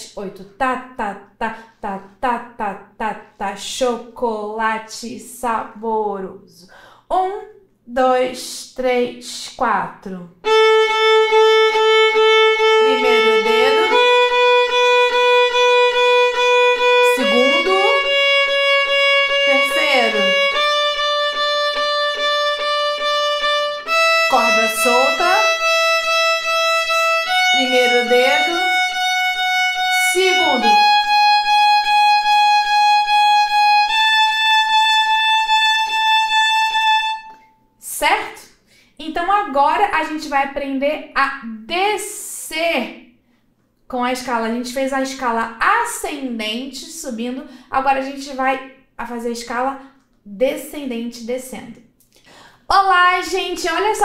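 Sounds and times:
violin playing a scale: 10.4 - 37.5.

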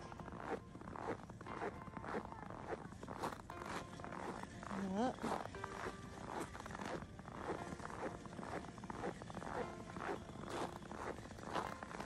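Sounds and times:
boots crunching through snow: 0.4 - 12.0.

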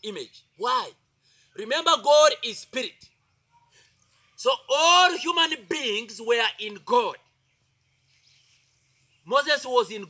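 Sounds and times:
man speaking: 0.0 - 1.0, 1.6 - 3.2, 4.4 - 7.2, 9.3 - 10.0
faint high background hiss: 0.0 - 10.0.

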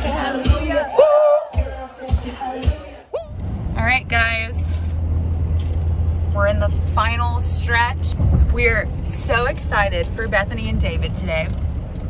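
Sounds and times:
car cabin road rumble: 0.0 - 12.0
woman speaking: 3.8 - 4.8, 6.4 - 11.5.

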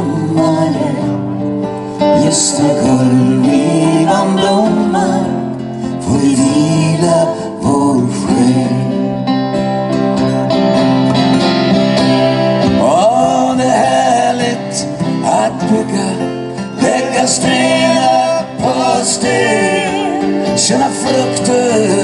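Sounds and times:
person singing: 0.0 - 9.3, 12.6 - 22.0
acoustic guitars playing: 0.0 - 22.0.

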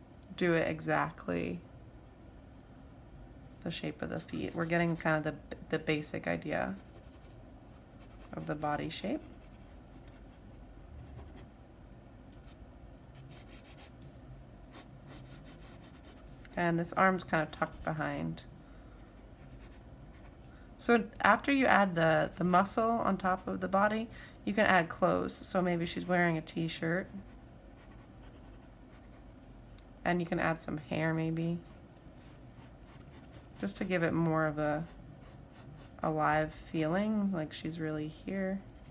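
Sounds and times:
pencil sketching on paper: 4.2 - 5.2, 6.7 - 10.4, 14.7 - 16.7, 17.3 - 18.0, 32.2 - 36.6.

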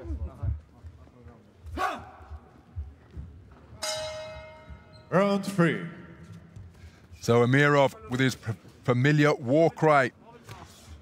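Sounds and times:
boxing ring bell ringing: 3.8 - 5.2.

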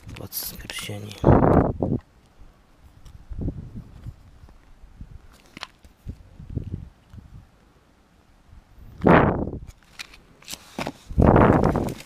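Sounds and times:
plastic card sleeves handled: 9.7 - 12.0.

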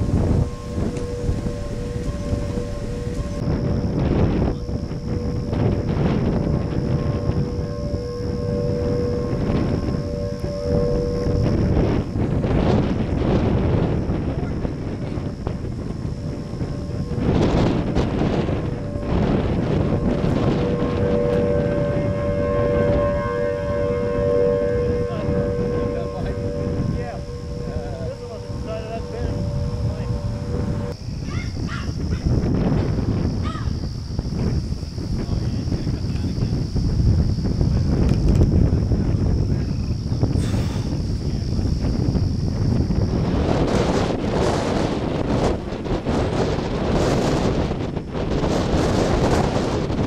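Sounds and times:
two-tone warning siren wail: 0.0 - 31.0
wind buffeting microphone: 0.0 - 50.0.

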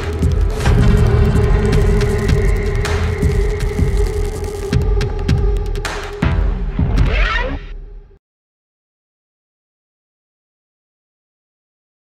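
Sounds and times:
humming drone: 0.0 - 8.0
low throbbing pulse: 0.0 - 8.1.

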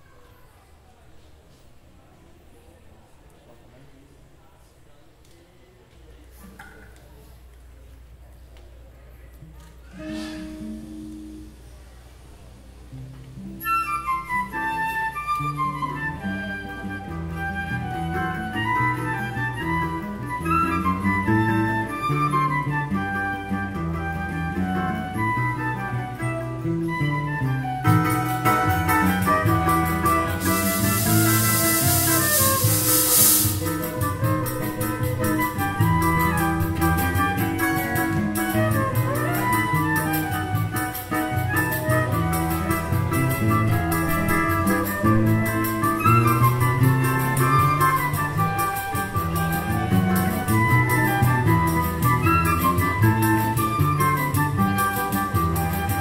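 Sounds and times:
guitar: 9.3 - 56.0
brief high hiss: 9.9 - 11.7, 30.1 - 34.8
pandeiro: 12.9 - 56.0
flute playing quick runs: 13.5 - 56.0
cavaquinho: 27.8 - 56.0
trombone and saxophone: 28.4 - 37.0, 40.7 - 48.2.

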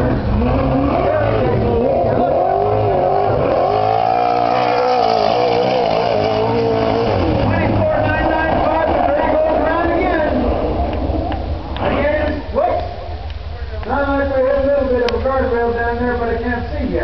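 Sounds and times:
race car engine revving: 0.0 - 13.1.

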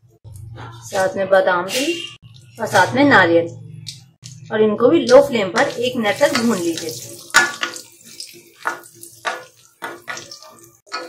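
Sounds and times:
dry fruits frying in oil: 4.9 - 11.0
spatula scraping in a pan: 5.6 - 11.0.

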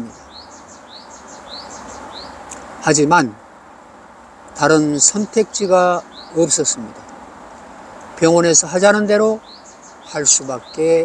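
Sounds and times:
small bird chirping: 0.0 - 2.6, 5.0 - 7.2, 8.8 - 11.0.

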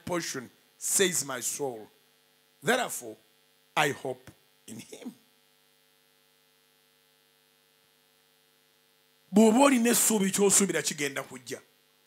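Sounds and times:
person speaking: 0.0 - 1.9, 2.6 - 3.2, 3.8 - 5.2, 9.3 - 11.7
faint electrical mains hum: 0.0 - 12.0.

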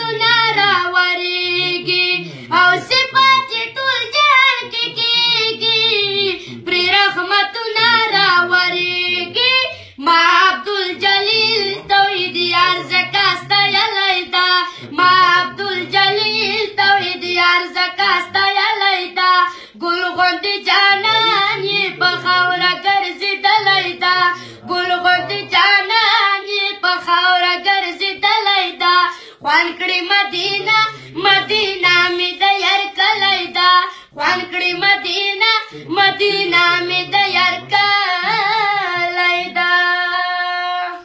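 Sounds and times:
boy singing devotional song: 0.0 - 41.0.

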